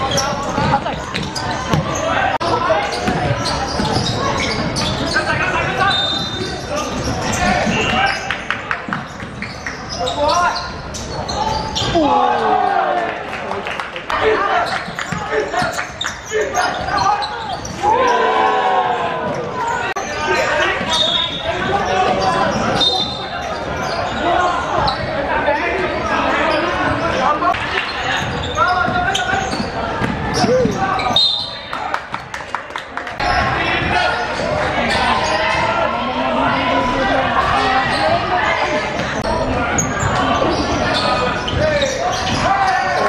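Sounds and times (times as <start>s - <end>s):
high squeaks: 0.0s - 8.4s, 19.5s - 25.1s.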